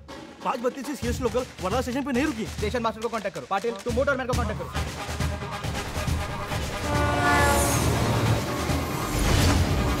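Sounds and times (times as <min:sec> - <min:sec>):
low rumble of moving train: 0:06.2 - 0:10.0
electric train horn blast: 0:06.5 - 0:09.2.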